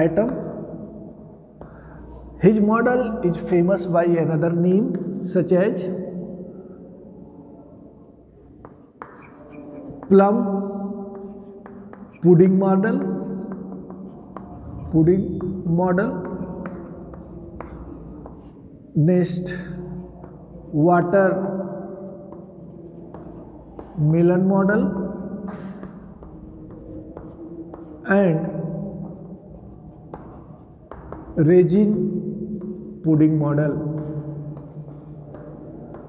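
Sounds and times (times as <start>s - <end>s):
chalk scratching on blackboard: 8.4s - 18.8s, 19.5s - 24.4s, 25.4s - 28.1s, 28.9s - 33.1s, 33.8s - 36.0s
chalk tapping on blackboard: 8.4s - 18.8s, 19.5s - 36.0s.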